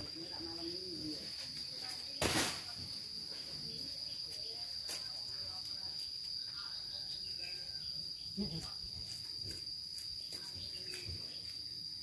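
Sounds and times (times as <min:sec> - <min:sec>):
high-pitched insect song: 0:00.0 - 0:12.0.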